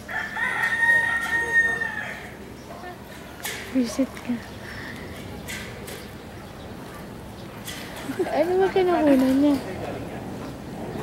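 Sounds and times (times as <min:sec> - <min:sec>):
rooster crowing: 0:00.0 - 0:02.4.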